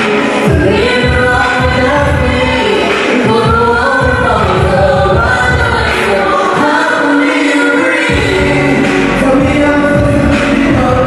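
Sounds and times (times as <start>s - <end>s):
bass and drum beat: 0.0s - 6.2s, 8.0s - 11.0s
amplified live singing: 0.0s - 11.0s.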